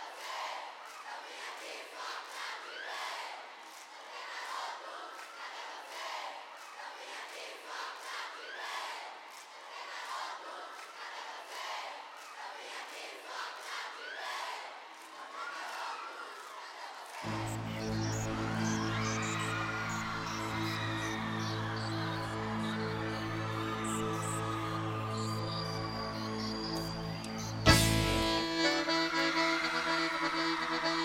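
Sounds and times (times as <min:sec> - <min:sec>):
crowd cheering and screaming: 0:17.3 - 0:31.0.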